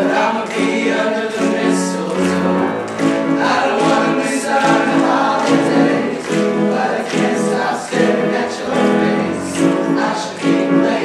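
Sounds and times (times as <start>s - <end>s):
men's choir singing: 0.0s - 11.0s.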